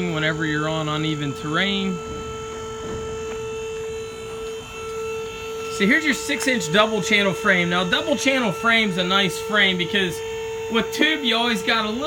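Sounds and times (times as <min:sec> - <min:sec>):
steady hum: 0:00.0 - 0:12.0.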